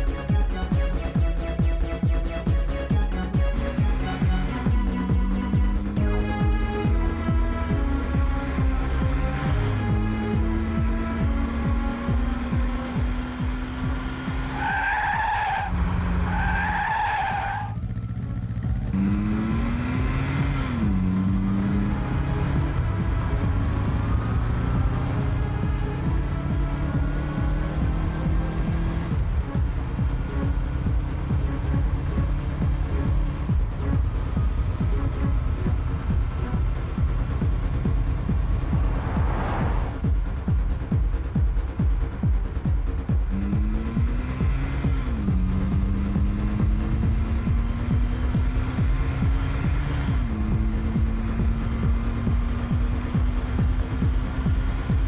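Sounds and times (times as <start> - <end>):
electronic music with heavy beat: 0.0 - 14.6, 26.9 - 55.0
car engine: 0.0 - 55.0
tyres skidding: 0.0 - 55.0.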